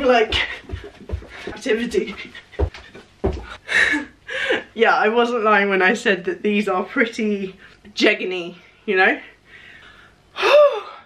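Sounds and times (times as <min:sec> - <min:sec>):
woman speaking: 0:00.0 - 0:00.7, 0:01.4 - 0:02.4, 0:04.8 - 0:09.3
faint breathing: 0:09.3 - 0:11.0
loud sigh: 0:10.4 - 0:11.0.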